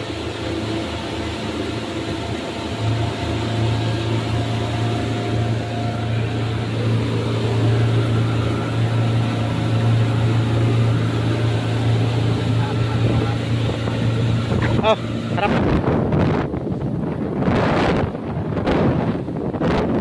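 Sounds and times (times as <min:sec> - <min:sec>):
outboard motor drone: 0:00.0 - 0:20.0
rush of wake and spray: 0:00.0 - 0:20.0.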